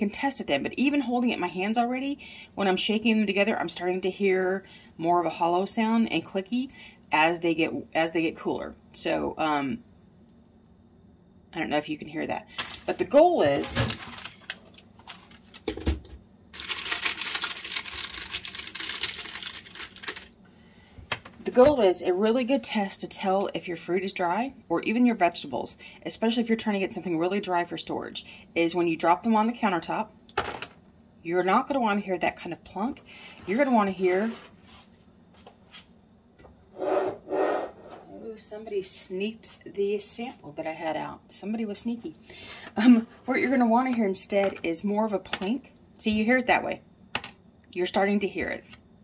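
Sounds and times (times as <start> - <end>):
dehydrator trays rustling: 12.6 - 15.8.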